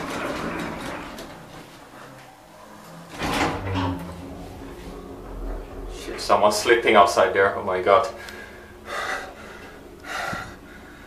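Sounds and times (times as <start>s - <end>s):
elevator doors sliding shut: 0.0s - 10.9s
elevator machine humming: 0.0s - 11.0s.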